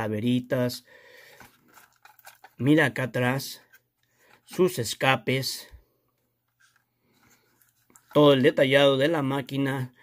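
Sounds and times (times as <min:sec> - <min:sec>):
soft handling of toy car: 0:01.4 - 0:02.7, 0:03.6 - 0:04.8, 0:05.6 - 0:08.6.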